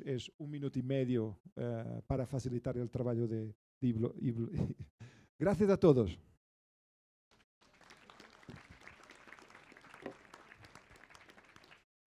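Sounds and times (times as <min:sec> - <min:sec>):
audience applause: 0:07.6 - 0:11.9.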